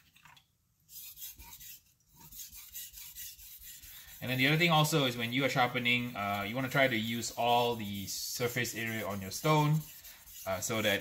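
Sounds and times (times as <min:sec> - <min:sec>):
knife scraping on whetstone: 0:00.9 - 0:11.0.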